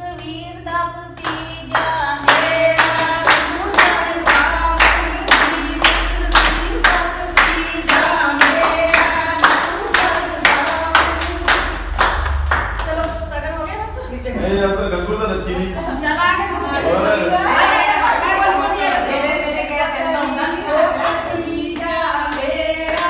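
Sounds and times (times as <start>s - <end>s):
women singing folk song: 0.0s - 12.0s, 15.9s - 23.0s
group hand-clapping: 0.1s - 13.3s, 16.9s - 23.0s.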